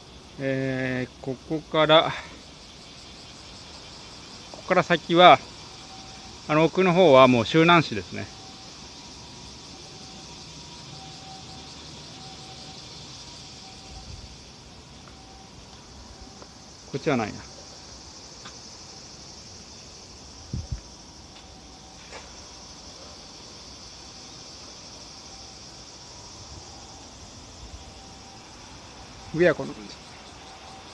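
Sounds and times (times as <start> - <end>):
distant traffic rumble: 0.0 - 30.9
insects chirring: 0.0 - 30.9.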